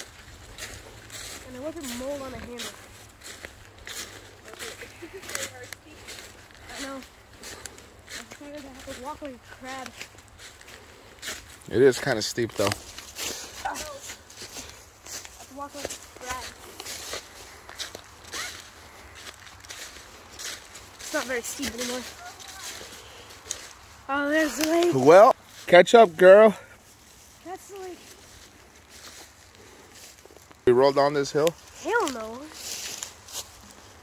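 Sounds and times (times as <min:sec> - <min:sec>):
footsteps crunching dry leaves: 0:00.0 - 0:34.0.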